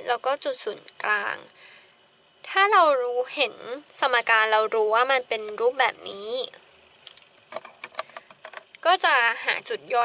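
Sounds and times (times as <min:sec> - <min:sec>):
woman speaking: 0:00.0 - 0:01.6, 0:02.4 - 0:06.6, 0:08.8 - 0:10.0.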